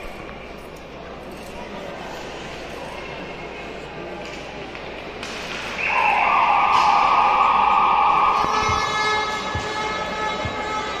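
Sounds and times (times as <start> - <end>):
arena horn blaring: 8.2 - 11.0.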